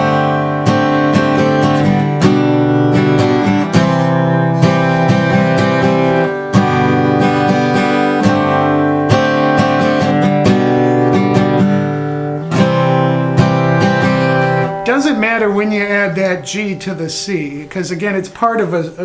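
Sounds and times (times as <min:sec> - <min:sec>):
acoustic guitar strummed slowly: 0:00.0 - 0:19.0.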